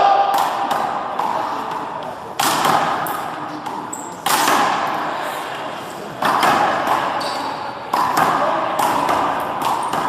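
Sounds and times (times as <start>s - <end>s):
handball smacking wall and floor: 0.4s - 5.0s, 6.2s - 10.0s.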